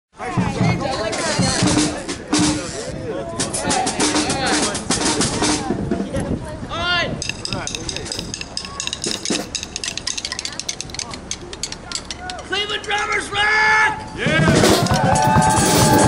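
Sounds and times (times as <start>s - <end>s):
people talking and calling out: 0.1s - 16.0s
drum and cymbal hits: 0.2s - 6.2s, 7.2s - 11.0s, 14.2s - 16.0s.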